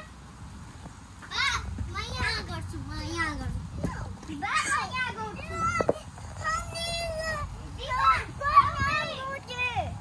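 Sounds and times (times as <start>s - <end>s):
children shouting at play: 1.2s - 10.0s.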